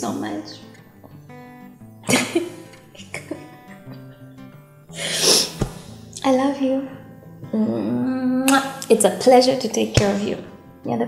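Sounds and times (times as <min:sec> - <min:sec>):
soft acoustic guitar music: 0:00.0 - 0:11.0
woman breathing tearfully and sniffing: 0:04.9 - 0:06.1.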